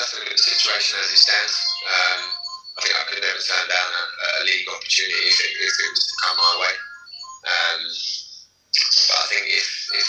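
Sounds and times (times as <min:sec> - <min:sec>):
man talking over video call: 0:00.0 - 0:10.0.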